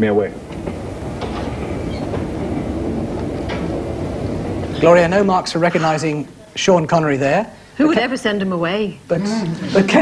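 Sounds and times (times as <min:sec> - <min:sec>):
wheels clattering on rails: 0:00.0 - 0:06.4
train rumbling: 0:00.0 - 0:07.4.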